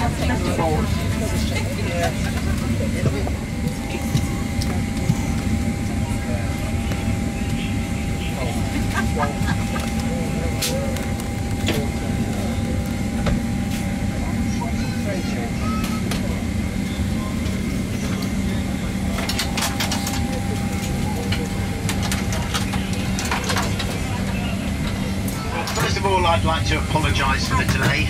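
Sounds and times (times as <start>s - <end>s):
low aircraft cabin rumble: 0.0s - 28.0s
murmur of voices: 0.0s - 28.0s.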